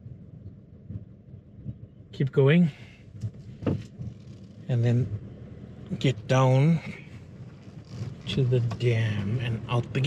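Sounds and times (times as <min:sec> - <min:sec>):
wind buffeting microphone: 0:00.0 - 0:02.1.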